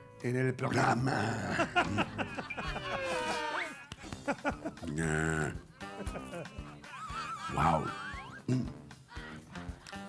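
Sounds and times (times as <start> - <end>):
background music: 0.0 - 10.0
man mock sobbing: 0.7 - 9.4.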